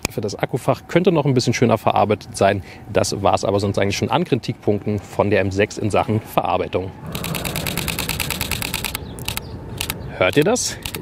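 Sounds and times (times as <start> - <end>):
camera shutter clicking: 7.1 - 11.0.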